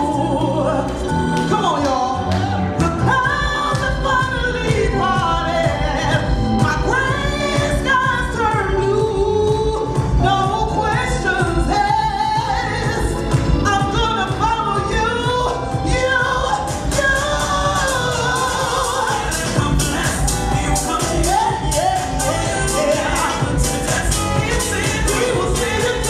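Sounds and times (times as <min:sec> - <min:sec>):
house music with steady beat: 0:00.0 - 0:26.0
woman singing into microphone: 0:00.0 - 0:26.0.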